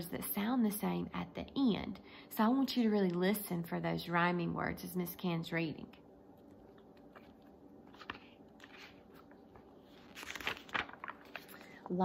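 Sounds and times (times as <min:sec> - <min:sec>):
paper rustling and crinkling: 0:06.4 - 0:12.0.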